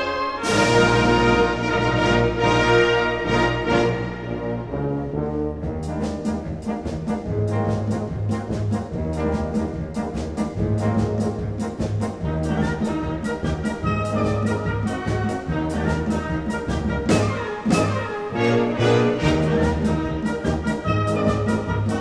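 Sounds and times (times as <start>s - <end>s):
wind band playing: 0.0s - 22.0s.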